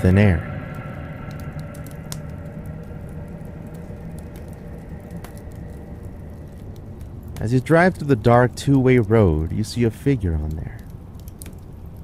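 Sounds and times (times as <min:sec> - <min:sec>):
low steady drone: 0:00.0 - 0:09.6
log fire crackling and popping: 0:00.0 - 0:12.0.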